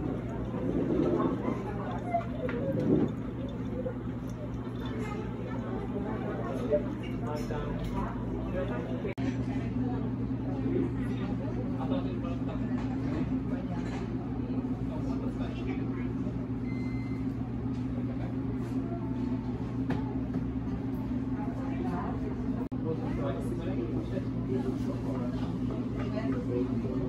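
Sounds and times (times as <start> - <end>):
murmur of people talking: 0.0 - 27.0
steady low hum: 0.0 - 27.0.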